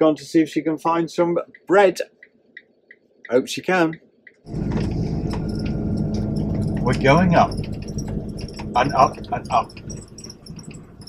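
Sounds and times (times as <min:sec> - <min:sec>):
engine and road drone in cab: 0:04.0 - 0:11.0
small rattles: 0:04.5 - 0:11.0.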